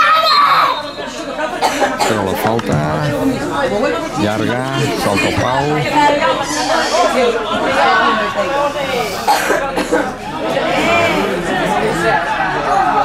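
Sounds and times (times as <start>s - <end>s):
people talking over one another: 0.0s - 13.0s.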